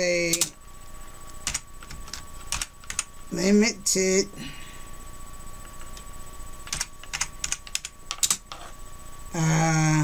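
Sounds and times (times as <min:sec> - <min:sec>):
computer keyboard typing: 0:01.4 - 0:03.1, 0:06.6 - 0:08.6.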